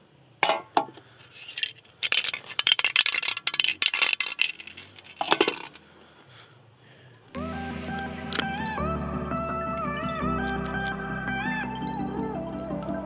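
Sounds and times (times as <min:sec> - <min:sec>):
metallic clinks and rattles: 0:01.3 - 0:05.8.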